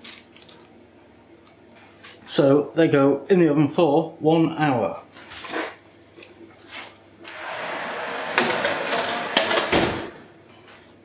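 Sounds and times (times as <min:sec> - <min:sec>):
oven rushing noise: 0:07.2 - 0:10.8
oven door shutting thump: 0:07.3 - 0:10.3.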